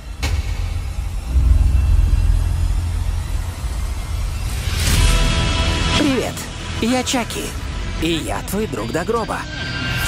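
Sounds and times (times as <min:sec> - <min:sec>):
deep rumbling drone: 0:00.0 - 0:08.0
trailer impact hit: 0:00.1 - 0:05.8.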